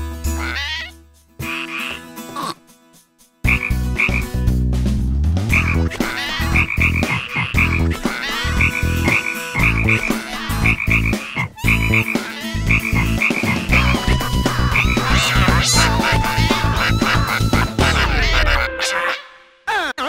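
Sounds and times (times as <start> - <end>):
cartoon giant frog croaking: 5.5 - 18.6.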